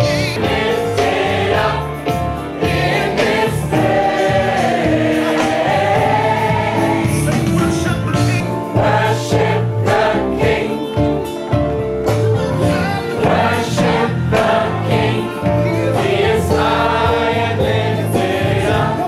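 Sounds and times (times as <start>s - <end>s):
choir singing gospel: 0.0s - 19.0s.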